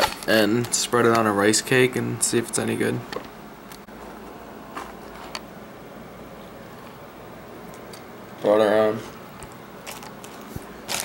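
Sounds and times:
plastic bag crinkling: 0:09.8 - 0:11.0.

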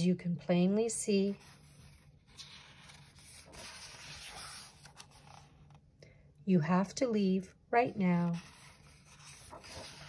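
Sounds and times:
book page turning: 0:01.3 - 0:05.8, 0:08.2 - 0:10.0.

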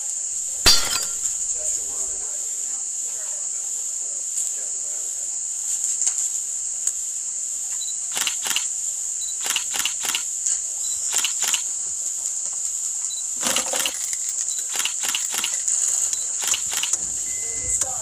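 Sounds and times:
steady high hiss: 0:00.0 - 0:18.0
spray bottle squirting: 0:13.4 - 0:17.0.

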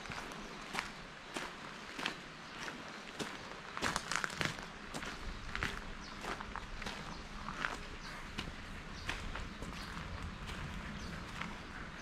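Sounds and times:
footsteps crunching on gravel: 0:00.0 - 0:12.0.

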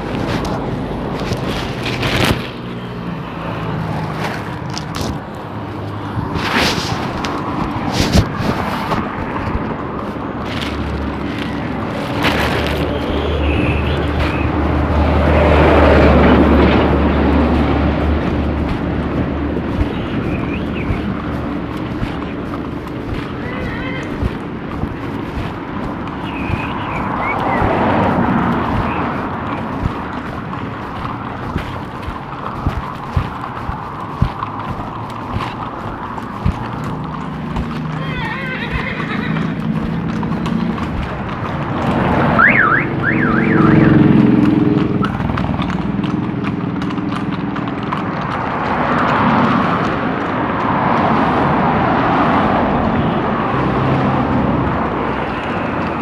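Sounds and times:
street traffic passing: 0:00.0 - 0:56.0.

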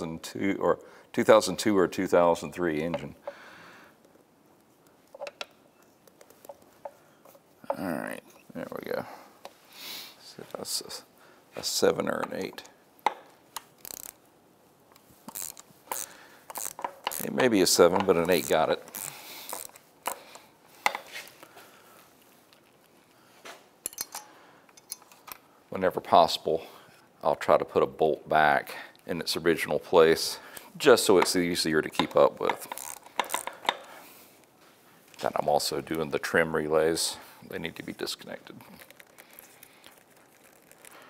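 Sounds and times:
ratchet wrench clicking: 0:13.8 - 0:14.2, 0:15.3 - 0:17.4, 0:18.0 - 0:19.8, 0:32.5 - 0:33.8.

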